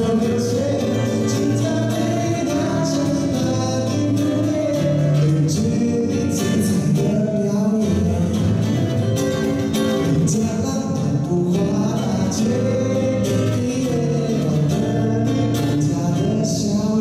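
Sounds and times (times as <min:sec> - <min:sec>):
acoustic guitar: 0:00.0 - 0:17.0
man singing: 0:00.0 - 0:17.0.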